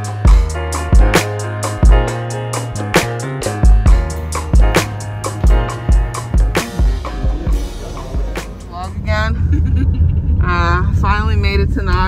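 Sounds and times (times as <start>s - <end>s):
background music: 0.0s - 9.5s.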